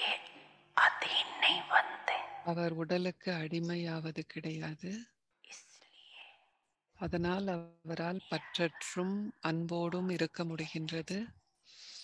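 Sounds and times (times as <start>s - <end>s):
faint breathy whisper: 0.0s - 2.4s, 5.5s - 6.6s.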